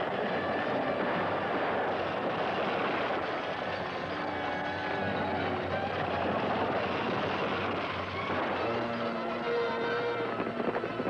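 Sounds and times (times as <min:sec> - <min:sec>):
wagon wheels rumbling over rough ground: 0:00.0 - 0:11.0.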